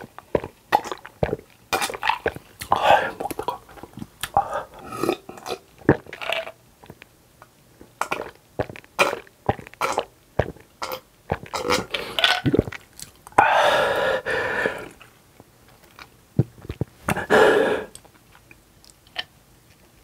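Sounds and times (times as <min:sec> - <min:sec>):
person gulping a drink: 0:00.0 - 0:07.0, 0:07.8 - 0:15.1, 0:15.9 - 0:18.1.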